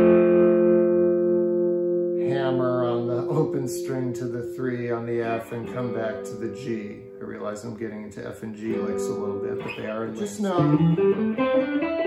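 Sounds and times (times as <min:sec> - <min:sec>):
electric guitar notes ringing: 0:00.0 - 0:12.0.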